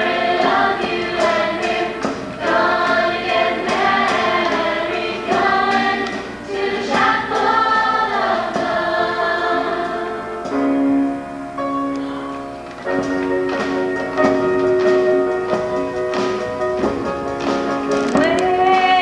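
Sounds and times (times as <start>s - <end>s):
choir singing in harmony: 0.0s - 11.0s
musical accompaniment: 0.0s - 19.0s.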